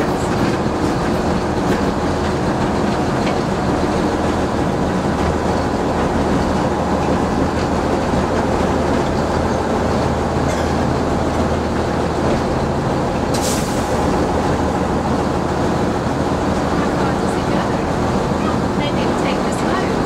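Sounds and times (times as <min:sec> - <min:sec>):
diesel engine drone: 0:00.0 - 0:20.0
rail and wheel noise: 0:00.0 - 0:20.0.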